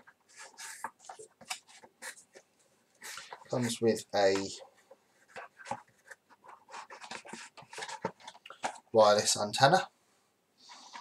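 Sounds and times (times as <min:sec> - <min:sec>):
packaging rustling: 0:05.3 - 0:09.0.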